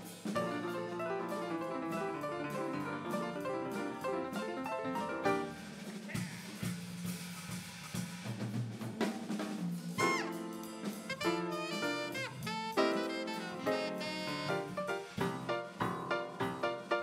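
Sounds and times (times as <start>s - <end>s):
drum kit with snare and cymbals: 0.0s - 17.0s
piano notes: 0.4s - 5.7s, 10.0s - 17.0s.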